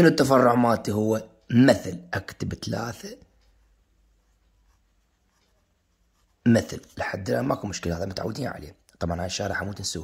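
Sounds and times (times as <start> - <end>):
pen scratching on paper: 4.1 - 7.0.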